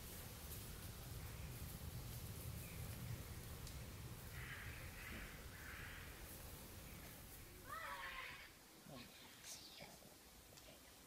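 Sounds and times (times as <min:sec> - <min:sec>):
harsh bird calls: 0:04.2 - 0:08.5.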